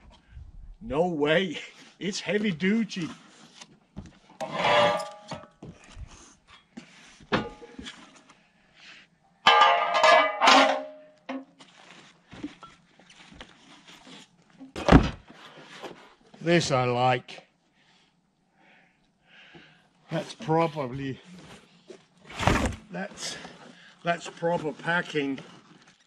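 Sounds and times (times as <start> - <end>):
metal pieces clanking: 4.4 - 5.4, 9.5 - 11.4
cardboard rustling and scraping: 11.6 - 16.2.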